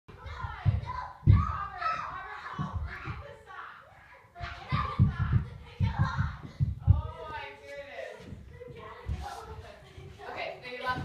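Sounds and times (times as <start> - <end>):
children chattering: 0.1 - 11.0
low bumps: 4.4 - 7.4.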